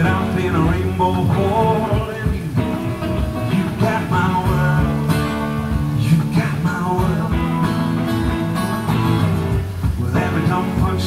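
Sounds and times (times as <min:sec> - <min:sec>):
person singing: 0:00.0 - 0:05.3, 0:05.9 - 0:08.1, 0:09.9 - 0:11.0
guitars playing: 0:00.0 - 0:11.0.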